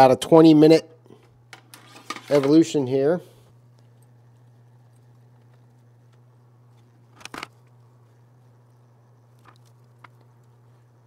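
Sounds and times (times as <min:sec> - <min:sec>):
circulation pump humming: 0:00.0 - 0:11.0.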